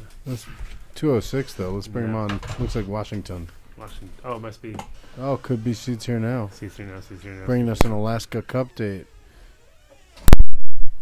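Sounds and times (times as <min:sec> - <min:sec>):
low rumbling static: 0:00.0 - 0:11.0.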